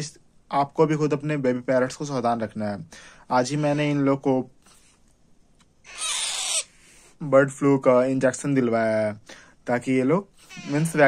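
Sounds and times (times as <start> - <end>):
parrot rasping call: 5.8 - 6.8, 10.4 - 11.0.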